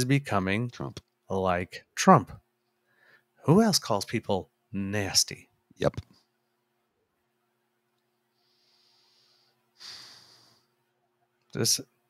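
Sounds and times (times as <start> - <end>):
person breathing close up: 2.8 - 3.3, 8.3 - 10.8.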